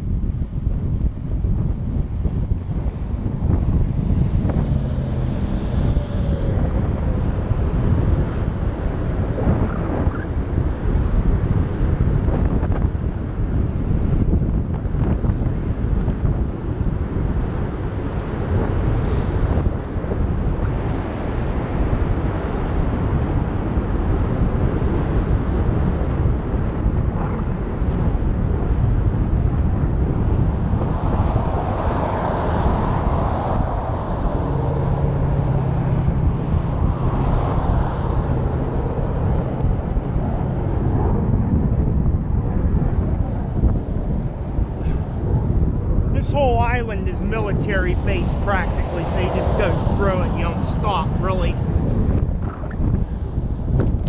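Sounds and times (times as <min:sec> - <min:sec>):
wind rushing over microphone: 0:00.0 - 0:54.0
engine noise: 0:01.9 - 0:54.0.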